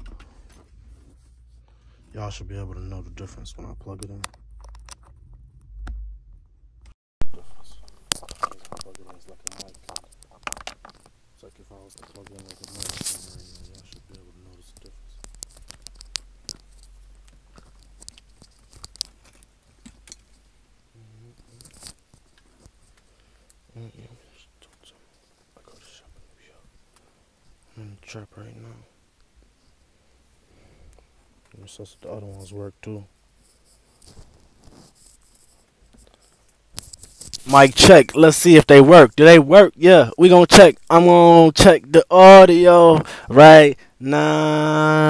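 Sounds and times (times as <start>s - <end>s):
cable and clothing rustling: 7.3s - 20.4s.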